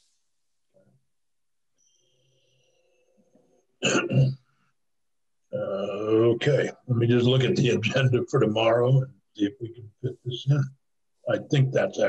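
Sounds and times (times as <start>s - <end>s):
man clearing throat: 3.8s - 4.3s.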